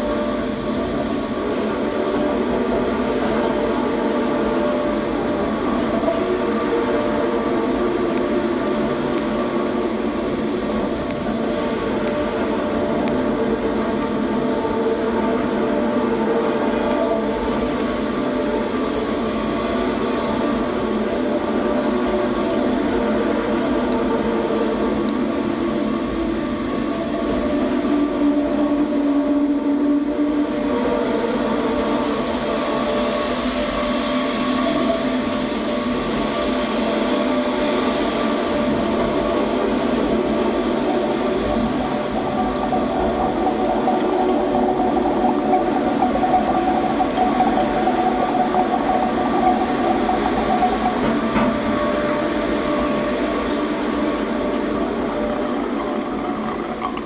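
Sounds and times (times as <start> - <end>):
electronic noise drone: 0.0 - 57.0.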